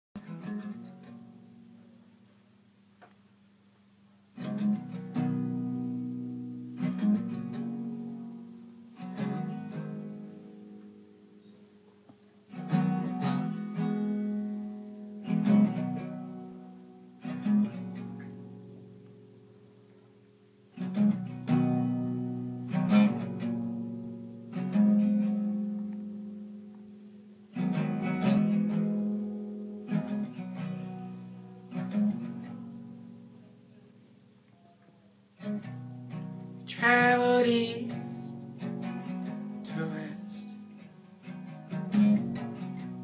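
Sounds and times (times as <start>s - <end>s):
acoustic guitar strummed chords: 0.2s - 2.3s, 4.2s - 43.0s.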